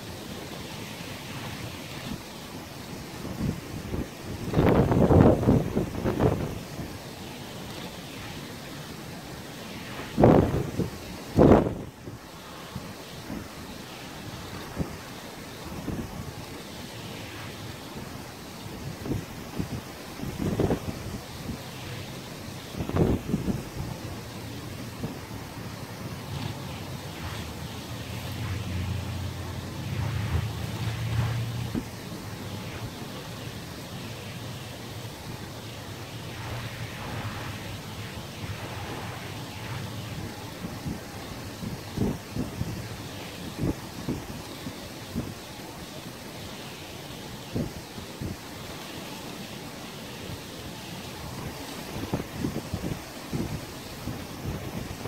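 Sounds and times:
sea noise: 0:00.0 - 0:55.0
wind buffeting microphone: 0:03.3 - 0:06.7, 0:09.8 - 0:12.0, 0:18.8 - 0:33.6
low engine drone: 0:24.6 - 0:33.4.

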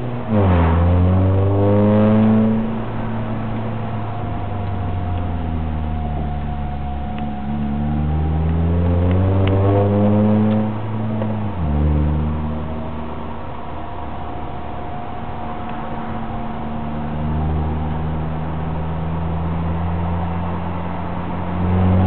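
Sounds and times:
car engine from inside cabin: 0:00.0 - 0:22.0.

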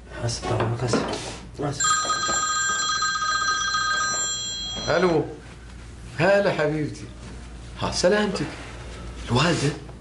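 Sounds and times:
mobile phone ringtone trilling: 0:01.8 - 0:05.2.

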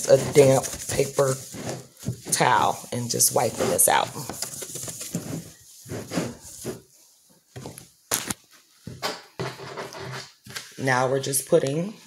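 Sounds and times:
paper towel rubbing on plastic: 0:00.0 - 0:07.0.

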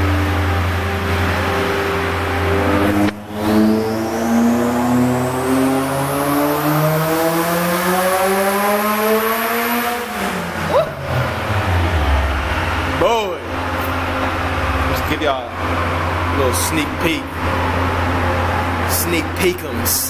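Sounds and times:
high turbo whistle: 0:00.0 - 0:19.4
car engine revving: 0:00.0 - 0:20.0.

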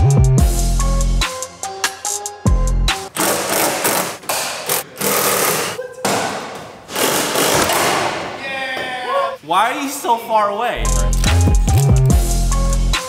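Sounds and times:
power tool cutting: 0:03.1 - 0:05.8, 0:06.9 - 0:07.8.

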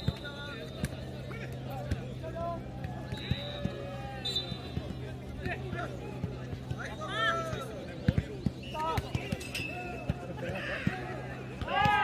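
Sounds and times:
players calling out: 0:00.0 - 0:12.0.

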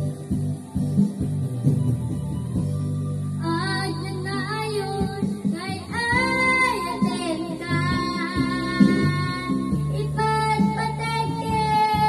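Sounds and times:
karaoke backing track with guitar: 0:00.0 - 0:12.0
girl singing into a microphone: 0:03.4 - 0:12.0.

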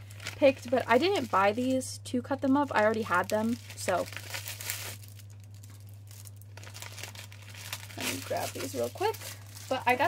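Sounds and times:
plastic sleeves crinkling: 0:00.0 - 0:01.8, 0:02.4 - 0:10.0
low steady hum: 0:00.0 - 0:10.0.

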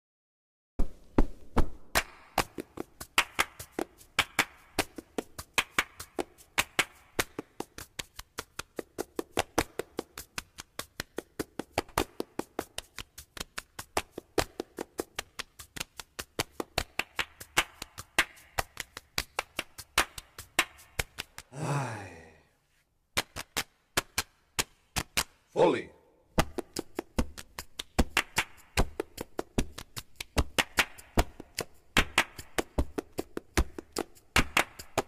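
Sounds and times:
music with clicking percussion: 0:02.0 - 0:21.4, 0:26.4 - 0:35.0.

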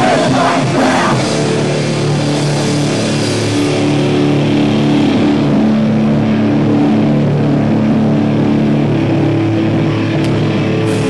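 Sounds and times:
distorted electric guitars: 0:00.0 - 0:11.0
drums: 0:00.0 - 0:11.0.

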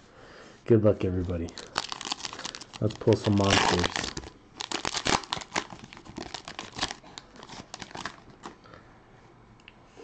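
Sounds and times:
foil wrapper tearing and crinkling: 0:01.4 - 0:08.5.

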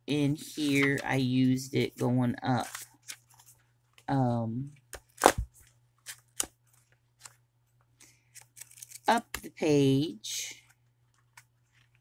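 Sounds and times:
notebook pages rustling: 0:00.3 - 0:04.1, 0:08.1 - 0:09.1, 0:10.6 - 0:12.0.

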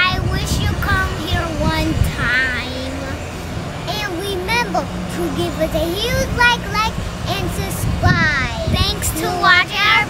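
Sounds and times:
children's voices calling: 0:00.0 - 0:10.0.

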